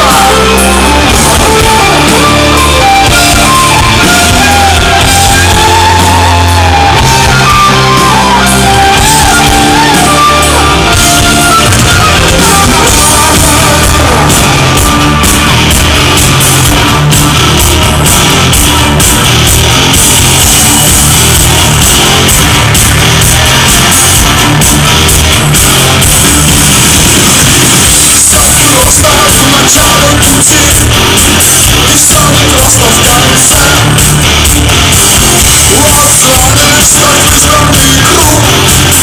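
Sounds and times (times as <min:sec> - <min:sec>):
man singing: 0:00.0 - 0:06.9, 0:08.8 - 0:15.2, 0:27.9 - 0:34.2, 0:35.4 - 0:39.0
loud live rock band: 0:00.0 - 0:39.0.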